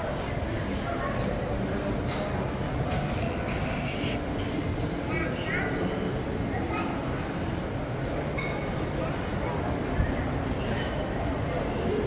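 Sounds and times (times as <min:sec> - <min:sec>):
indoor mall background rumble: 0:00.0 - 0:12.0.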